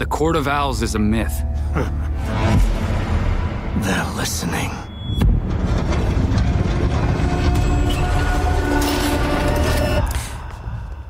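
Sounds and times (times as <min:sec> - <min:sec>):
dark cinematic music: 0:00.0 - 0:11.0.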